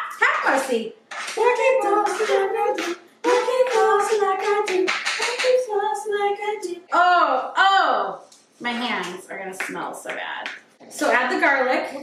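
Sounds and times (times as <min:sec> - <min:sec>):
woman singing wordless tune: 0:01.4 - 0:08.2.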